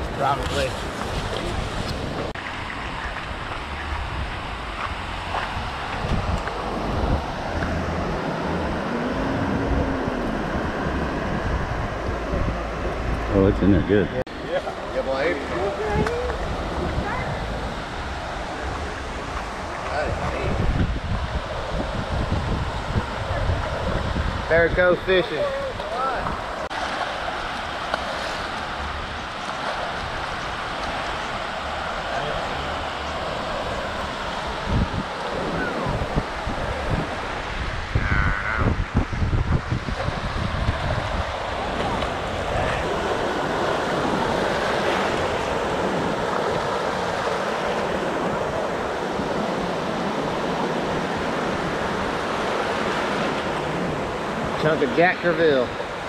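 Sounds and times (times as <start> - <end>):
small waves breaking: 0.0 - 13.4, 14.3 - 56.0
wind buffeting microphone: 0.0 - 56.0.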